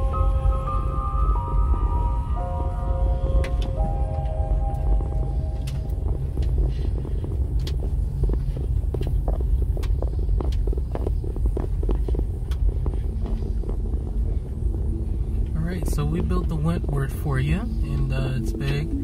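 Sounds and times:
road rumble inside car: 0:00.0 - 0:19.0.

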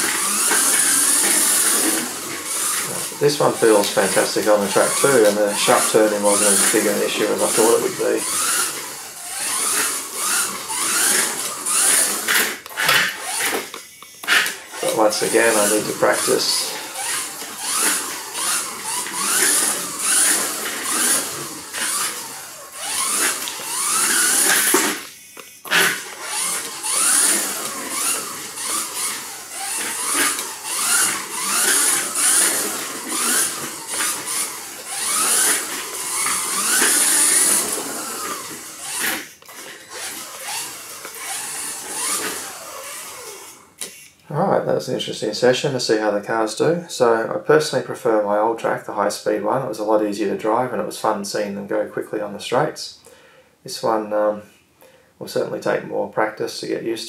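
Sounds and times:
small electric motor whining: 0:00.0 - 0:44.2.

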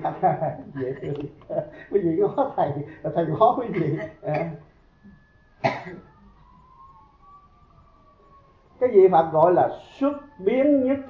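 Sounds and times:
person coughing: 0:03.7 - 0:04.6, 0:05.6 - 0:06.1.

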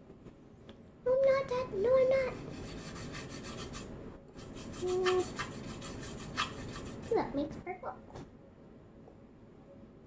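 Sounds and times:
paintbrush scrubbing paint: 0:02.4 - 0:07.2.

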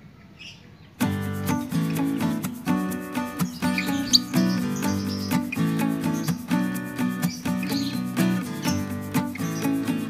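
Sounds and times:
lovebird chirp: 0:00.0 - 0:10.0
plucked-string music: 0:01.0 - 0:10.0.

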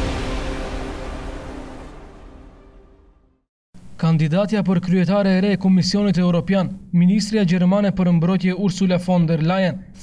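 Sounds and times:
news intro theme music: 0:00.0 - 0:03.5.

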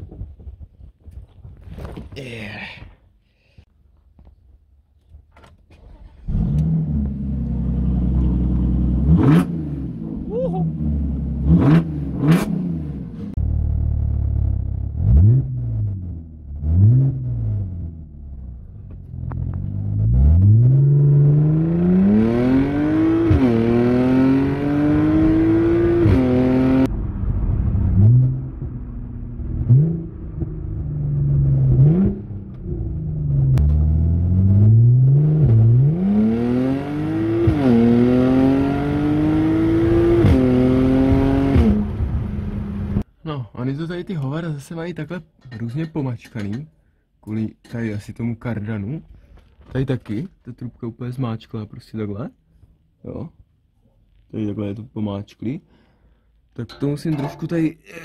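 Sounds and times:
car engine revving: 0:05.8 - 0:43.0
car accelerating hard: 0:06.1 - 0:13.8, 0:19.4 - 0:26.9, 0:27.6 - 0:43.0.

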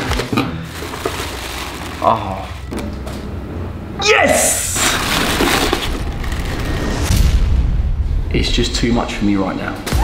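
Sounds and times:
tissue paper rustling and crinkling: 0:00.7 - 0:02.5, 0:04.6 - 0:06.7.

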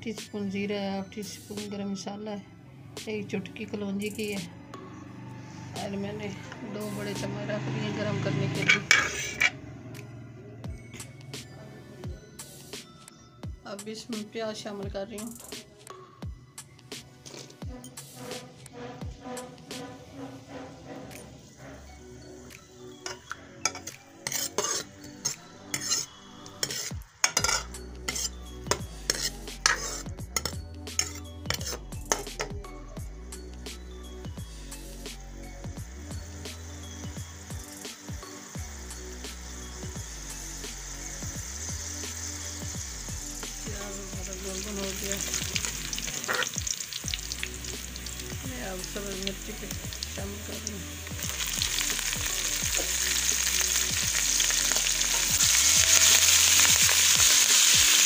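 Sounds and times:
metal ladle clinking and scraping pot: 0:08.6 - 0:09.6, 0:23.1 - 0:32.5, 0:46.1 - 0:46.6
onions sizzling in hot oil: 0:20.5 - 0:32.3, 0:35.6 - 0:58.0.

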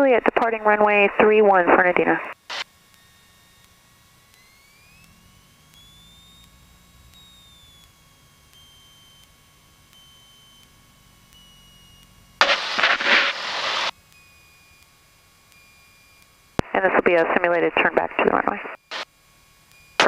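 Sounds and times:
propeller plane engine whine: 0:00.0 - 0:19.0
loud rush of noise: 0:12.4 - 0:13.9.

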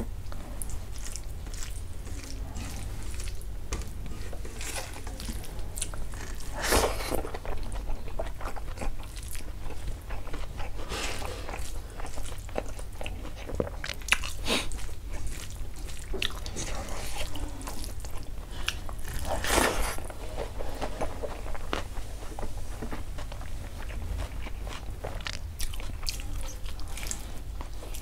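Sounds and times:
man chewing food: 0:00.0 - 0:28.0.

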